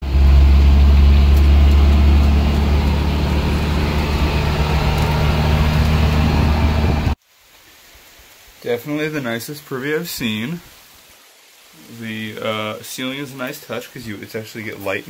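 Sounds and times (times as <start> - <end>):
engine drone: 0.0 - 7.2
tyre and wind noise: 0.0 - 7.2.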